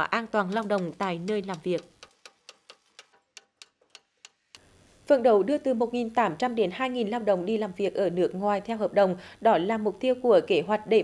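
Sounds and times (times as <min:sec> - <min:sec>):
faint sharp taps: 0:00.5 - 0:04.7.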